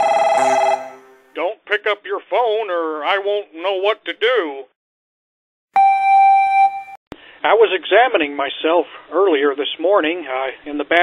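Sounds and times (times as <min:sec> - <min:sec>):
telephone electronic ringer: 0:00.0 - 0:01.2.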